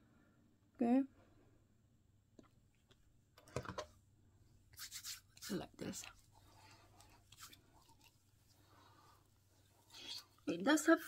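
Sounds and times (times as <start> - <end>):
fingertips rubbing cream on skin: 4.8 - 10.5.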